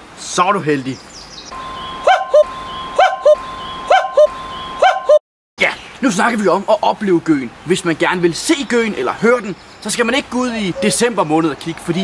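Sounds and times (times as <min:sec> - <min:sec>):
cuckoo calling: 0:01.5 - 0:05.2, 0:10.7 - 0:11.2.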